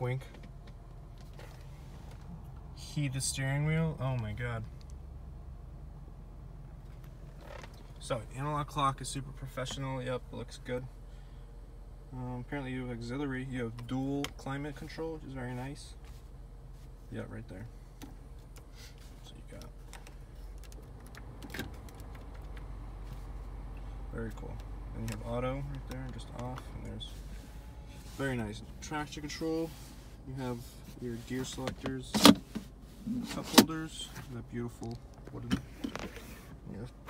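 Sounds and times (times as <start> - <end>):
car engine idling: 0.0 - 37.0
low cabin hum: 0.0 - 37.0.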